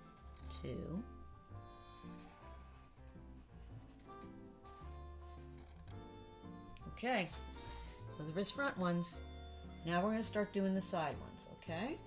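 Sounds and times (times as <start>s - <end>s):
quiet background music: 0.0s - 12.0s
marker rubbing on paper: 1.7s - 6.1s.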